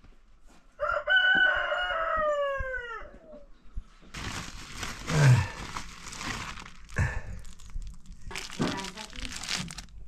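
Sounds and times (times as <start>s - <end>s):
rooster crowing: 0.8s - 3.4s.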